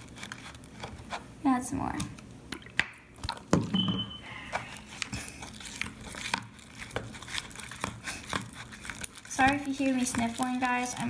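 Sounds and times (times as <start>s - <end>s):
spoon stirring sticky slime: 0.0s - 11.0s.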